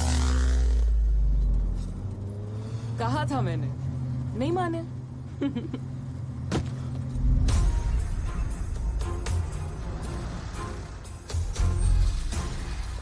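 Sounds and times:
van engine droning: 0.0 - 13.0.

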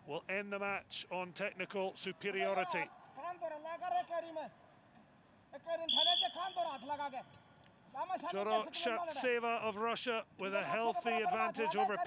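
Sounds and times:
referee's whistle blast: 5.9 - 6.8.

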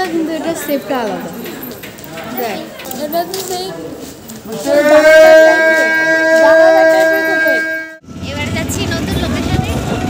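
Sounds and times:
horn tone: 4.7 - 8.5
auto-rickshaw engine rumble: 8.0 - 10.0
wind noise: 8.1 - 10.0
women's voices: 8.2 - 10.0.

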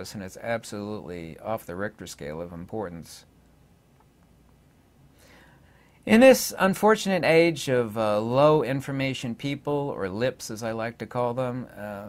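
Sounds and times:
soft intake of breath: 5.0 - 6.1.

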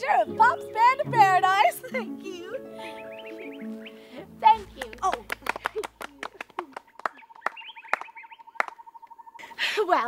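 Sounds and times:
scattered hand claps: 4.5 - 8.9.

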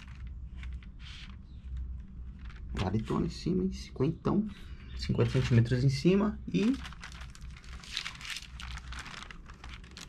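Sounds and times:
thin sail crinkling: 0.0 - 3.4, 5.0 - 10.0.

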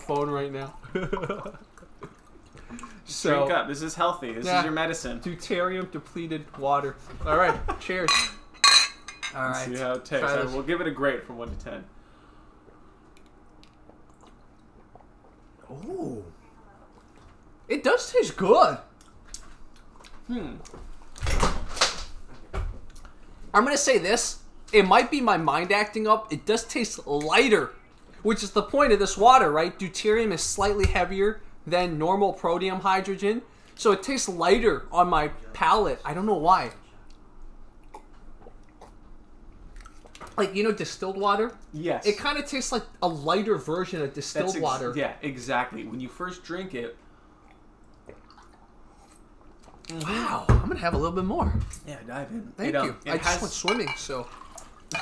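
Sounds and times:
faint steady hum: 0.0 - 55.0
people sipping and swallowing: 1.5 - 3.1, 12.6 - 17.6, 37.1 - 40.4, 47.2 - 50.2, 54.2 - 55.0
small wet clicks: 13.1 - 15.1
man sipping and swallowing: 47.4 - 50.0.

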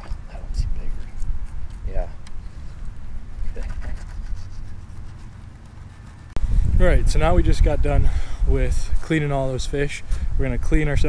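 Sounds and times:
wind rumble on microphone: 0.0 - 4.6, 6.4 - 11.0.

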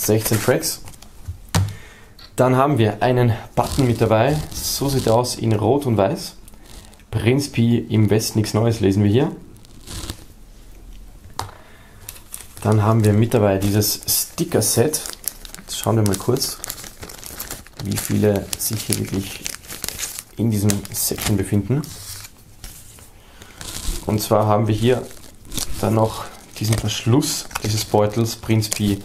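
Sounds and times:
plastic crinkling rustle: 3.6 - 5.4, 12.0 - 29.0
plastic bag handling: 11.4 - 29.0.

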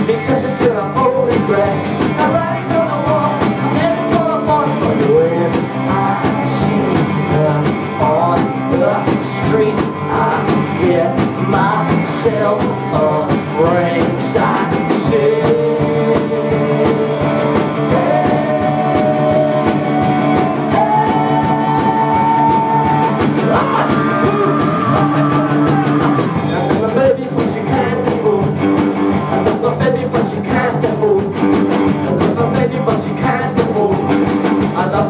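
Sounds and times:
electric guitar lead line: 0.0 - 35.0
rock band playing live: 0.0 - 35.0.

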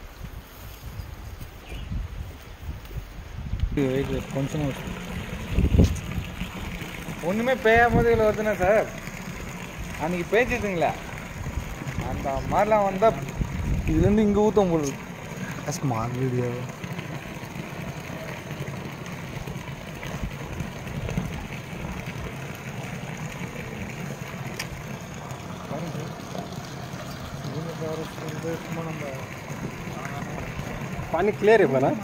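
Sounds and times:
water splashing into reservoir: 3.8 - 32.0.

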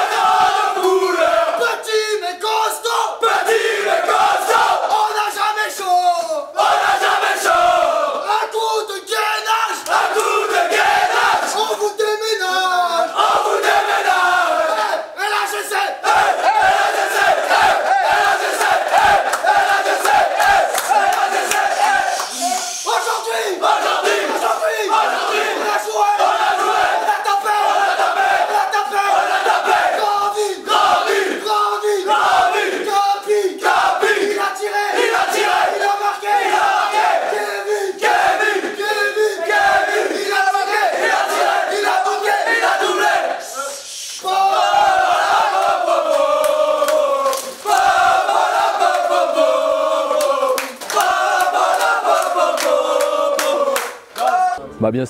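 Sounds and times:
group chanting and singing: 0.0 - 1.8, 2.4 - 5.6, 6.4 - 11.9, 12.5 - 54.6.

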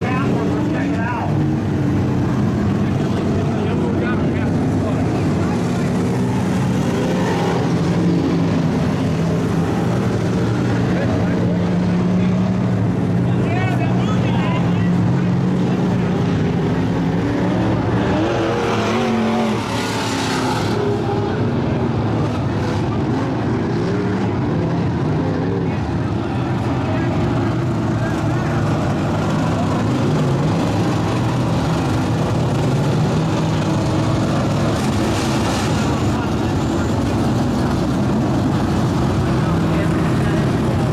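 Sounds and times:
crowd chatter: 0.0 - 40.9
race car engines running: 0.0 - 40.9.

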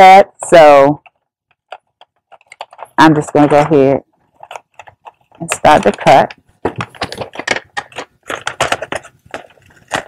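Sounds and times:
scissors cutting wrapping paper: 2.3 - 10.0.

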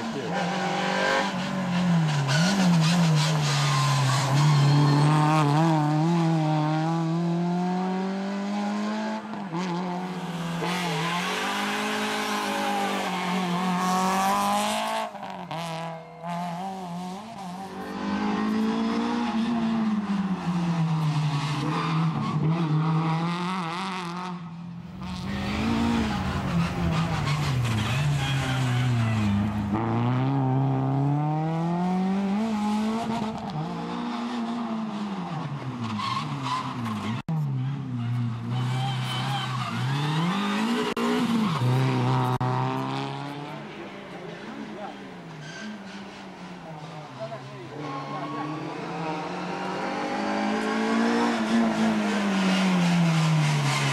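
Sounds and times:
car engine revving hard: 25.0 - 34.8.

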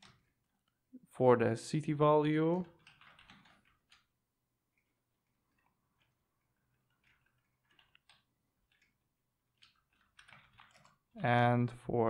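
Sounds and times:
computer keyboard typing: 2.6 - 4.1, 5.5 - 11.1.

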